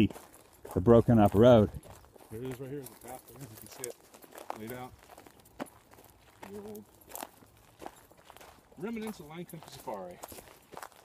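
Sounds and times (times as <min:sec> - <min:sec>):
footsteps on dirt path: 0:00.0 - 0:11.0.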